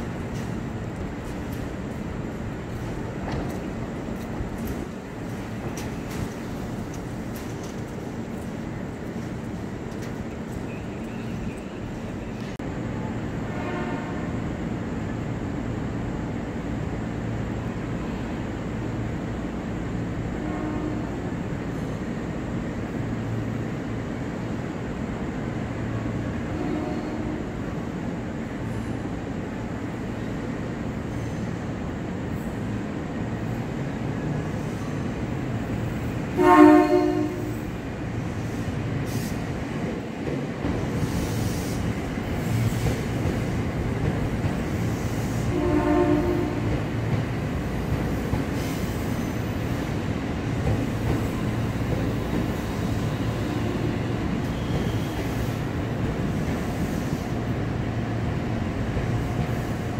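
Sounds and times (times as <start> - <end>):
train rumbling: 0.0 - 59.9
train horn: 13.4 - 14.4, 20.3 - 21.2, 26.4 - 27.6, 36.3 - 37.8, 45.4 - 46.8, 53.3 - 55.1.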